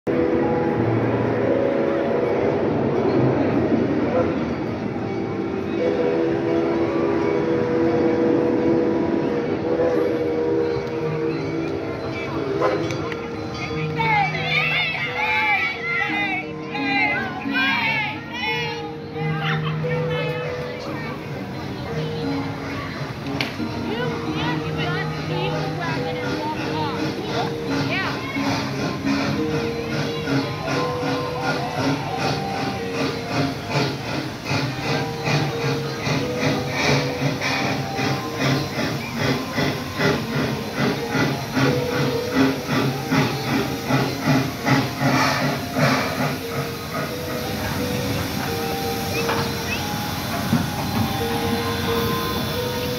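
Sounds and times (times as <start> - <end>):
background music with held notes: 0.1 - 52.9
children talking and calling out: 10.9 - 52.9
steam locomotive chuffing: 18.9 - 52.9
steam hissing: 23.7 - 52.9.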